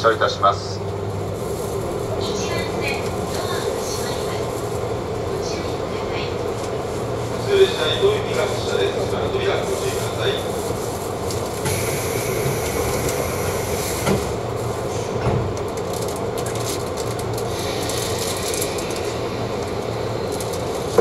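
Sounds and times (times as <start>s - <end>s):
train cabin hum and hiss: 0.0s - 21.0s.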